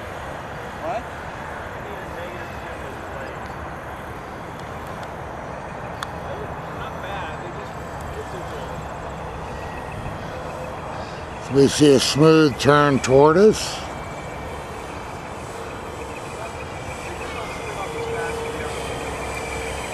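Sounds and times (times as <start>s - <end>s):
model aircraft engine drone: 0.0s - 19.9s.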